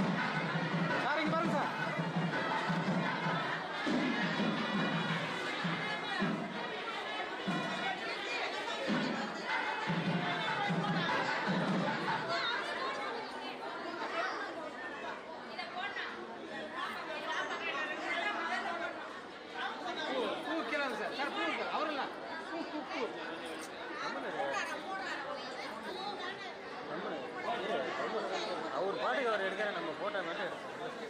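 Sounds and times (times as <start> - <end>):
crowd chatter: 0.0 - 31.0.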